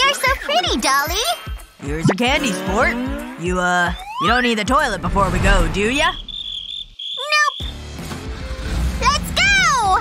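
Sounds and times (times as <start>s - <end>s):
background music: 0.0s - 6.1s
high-pitched voice speaking: 7.2s - 7.6s.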